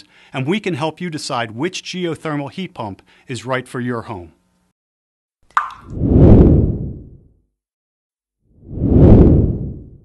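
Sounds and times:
deep whoosh: 5.9 - 7.2, 8.6 - 10.0.

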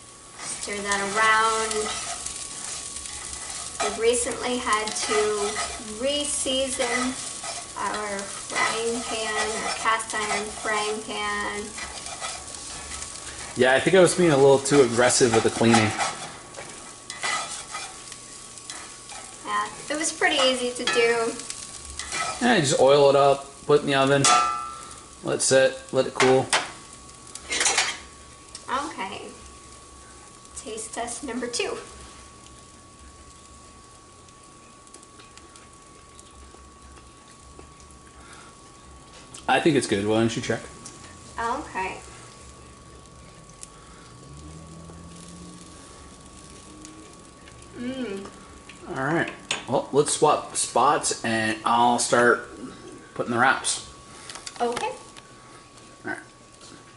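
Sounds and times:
food sizzling in a pan: 0.0 - 56.9
spatula scraping a frying pan: 0.4 - 22.8, 27.5 - 28.0.

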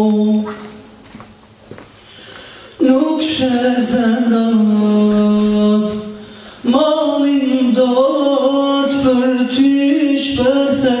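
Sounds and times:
man singing a cappella: 0.0 - 0.8, 2.8 - 11.0.

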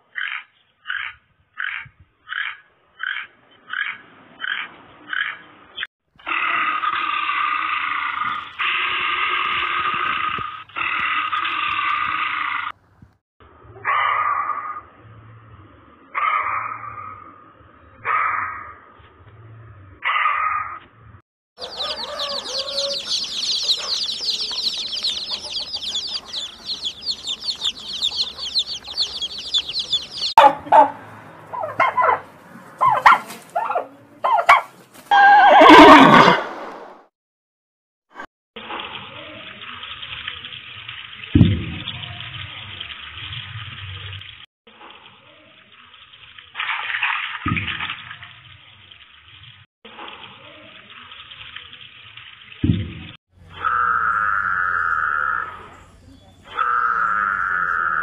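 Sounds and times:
chicks peeping: 21.6 - 30.9
animal calls: 21.6 - 36.4, 53.5 - 58.0
horse neighing: 35.1 - 36.4.

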